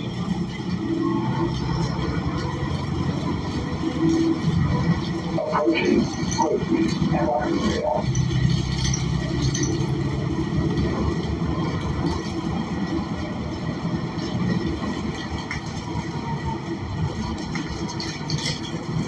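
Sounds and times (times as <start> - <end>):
bus engine drone: 0.0 - 19.0
road rumble: 0.0 - 19.0.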